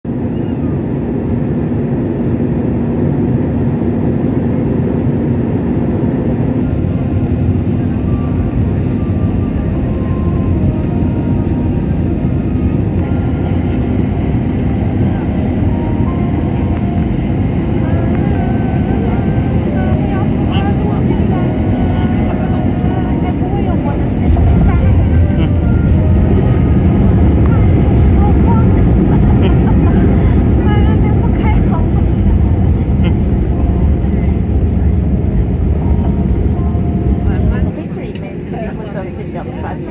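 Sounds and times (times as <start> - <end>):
airliner cabin engine rumble: 0.0 - 39.9.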